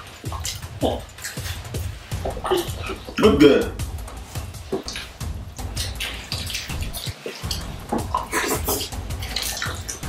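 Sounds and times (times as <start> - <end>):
wet chewing and lip-smacking: 0.0 - 3.2, 4.2 - 10.0.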